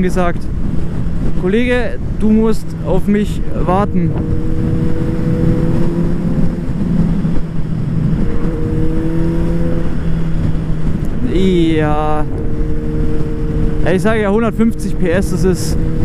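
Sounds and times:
motorcycle engine cruising: 0:00.0 - 0:16.0
wind rushing over microphone: 0:00.0 - 0:16.0.

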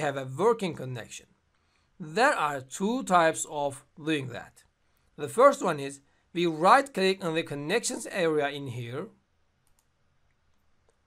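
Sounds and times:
faint computer mouse clicks: 0:09.6 - 0:11.0.

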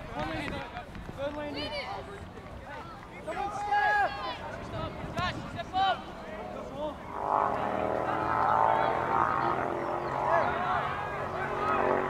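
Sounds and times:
faint players shouting: 0:00.0 - 0:06.8
steady engine drone: 0:05.6 - 0:12.0.

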